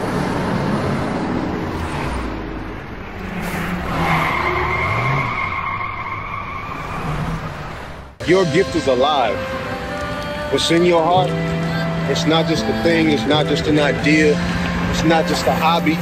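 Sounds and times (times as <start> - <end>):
tyres squealing: 3.2 - 7.9
car engine running: 7.2 - 16.0.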